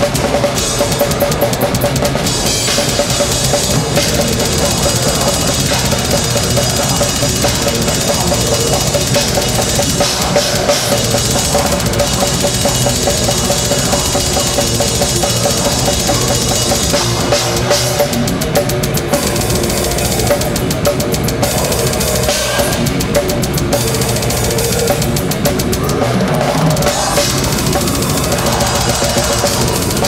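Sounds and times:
cymbals crashing: 0.0 - 30.0
fast drum kit: 0.0 - 30.0
guitars and bass: 0.0 - 30.0.

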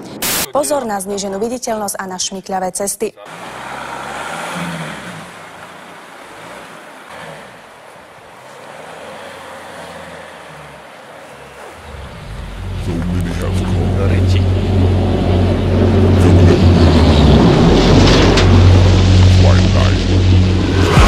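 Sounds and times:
car driving on snow: 3.3 - 21.0
deep low rumble: 11.8 - 21.0.

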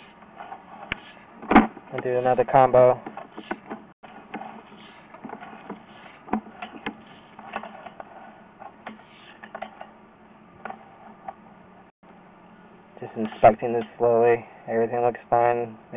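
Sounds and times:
faint steady hum: 0.0 - 15.9.

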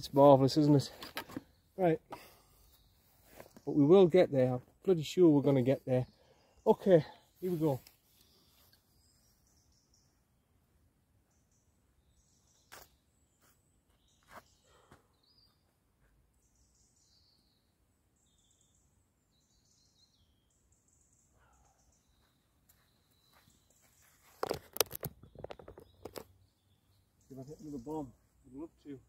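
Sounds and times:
faint birdsong: 0.0 - 29.0
camera handling clatter: 0.9 - 1.4, 24.4 - 26.3.

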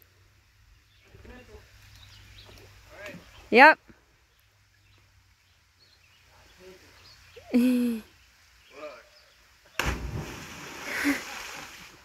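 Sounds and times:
water settling: 9.7 - 12.0
loud splash into water: 9.8 - 12.0.

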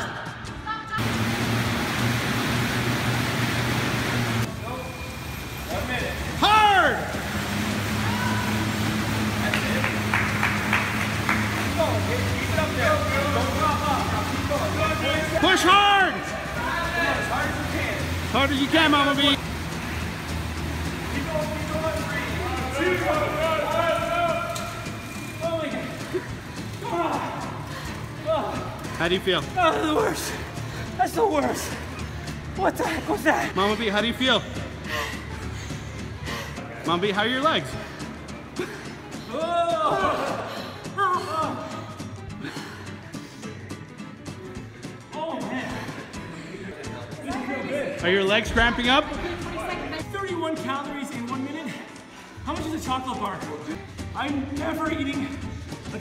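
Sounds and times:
air bike fan whooshing: 0.8 - 40.9
people gasping: 26.2 - 28.2, 34.6 - 36.8, 37.7 - 44.0.

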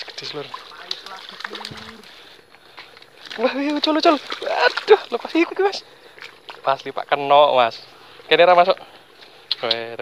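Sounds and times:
fish splashing at water surface: 0.0 - 2.4, 3.1 - 5.5.

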